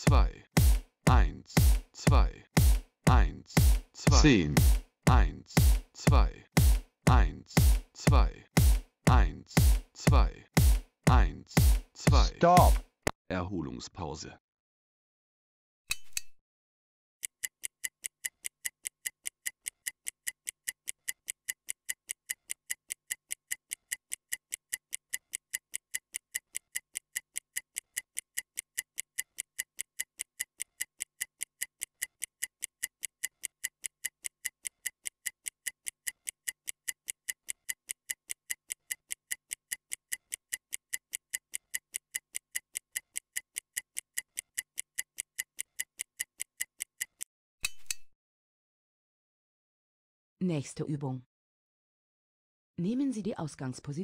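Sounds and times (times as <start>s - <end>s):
stopwatch ticking: 0.0s - 12.9s, 17.2s - 47.3s.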